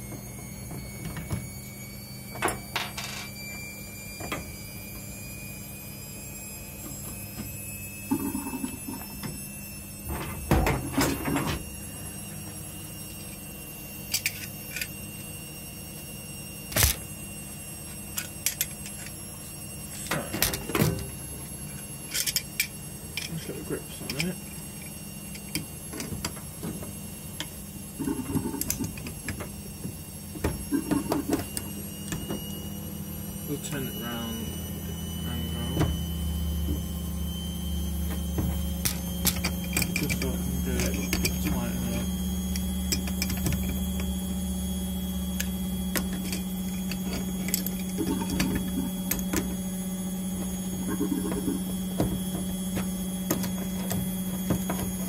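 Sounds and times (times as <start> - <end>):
faint rising whine: 0.0 - 55.0
low hum: 19.9 - 55.0.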